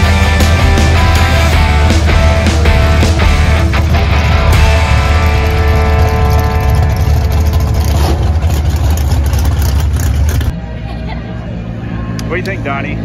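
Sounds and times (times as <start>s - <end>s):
race car engine rumbling: 0.0s - 13.0s.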